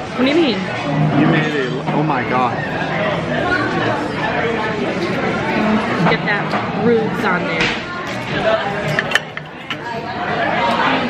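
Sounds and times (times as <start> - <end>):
diners chattering: 0.0 - 11.0.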